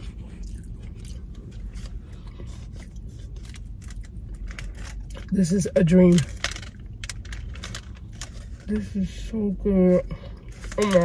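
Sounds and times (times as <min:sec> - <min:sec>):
person chewing cake: 0:00.0 - 0:05.4.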